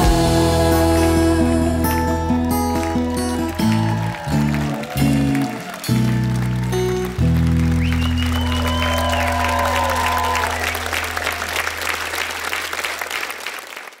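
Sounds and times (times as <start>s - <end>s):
acoustic guitar chord ringing: 0.0s - 8.6s
audience applause and cheering: 0.0s - 14.0s.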